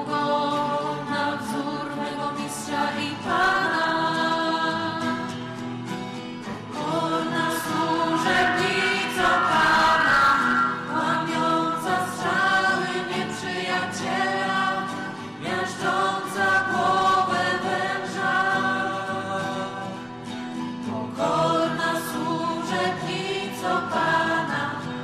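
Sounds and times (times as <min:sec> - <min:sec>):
congregation singing a hymn: 0:00.0 - 0:05.6, 0:06.5 - 0:25.0.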